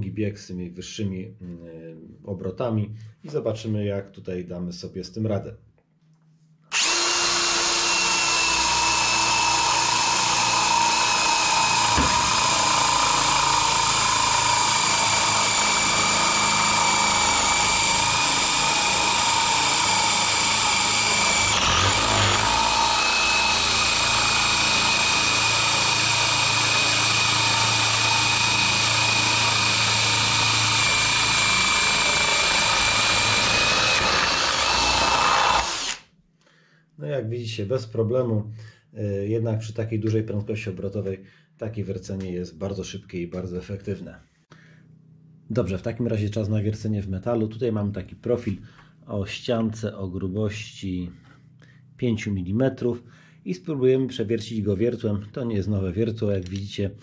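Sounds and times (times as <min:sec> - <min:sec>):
cordless drill boring through wood: 0:06.7 - 0:36.0.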